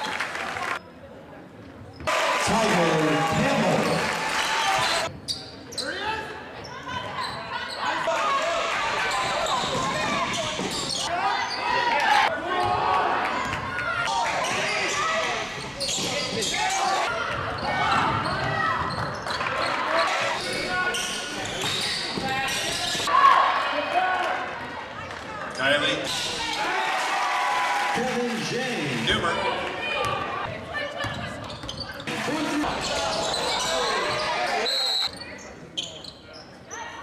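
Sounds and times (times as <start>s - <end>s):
echoing crowd chatter: 0.0s - 37.0s
basketball bouncing on court: 17.2s - 19.4s, 30.0s - 32.0s.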